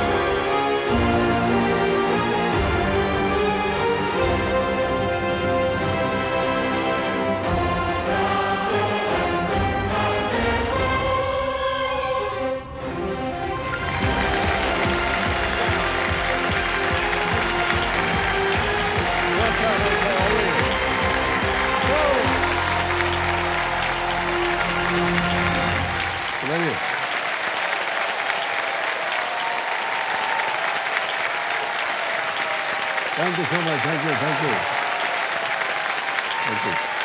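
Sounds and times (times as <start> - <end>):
audience applauding: 0.0 - 7.4, 13.6 - 37.0
music playing: 0.0 - 27.7.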